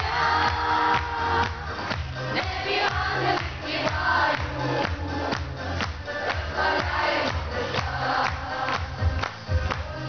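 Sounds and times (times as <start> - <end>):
children's choir singing: 0.0 - 1.7, 2.3 - 5.0, 6.1 - 9.0
woman singing lead: 0.0 - 5.3
amplified backing track with beat: 0.0 - 10.0.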